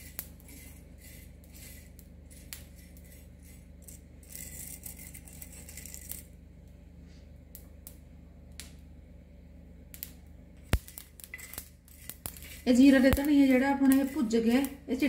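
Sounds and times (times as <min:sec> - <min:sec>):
spatula scraping seeds in iron pan: 0:00.0 - 0:06.3, 0:10.8 - 0:15.0
roasting seeds crackling: 0:00.0 - 0:06.8, 0:09.7 - 0:15.0.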